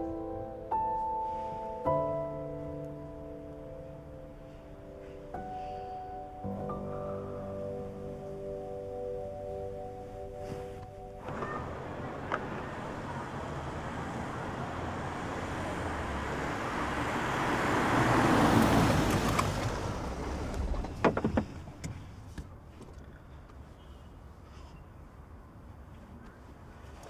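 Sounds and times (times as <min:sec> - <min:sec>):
soft background music: 0:00.0 - 0:16.3
car approaching on road: 0:09.5 - 0:23.2.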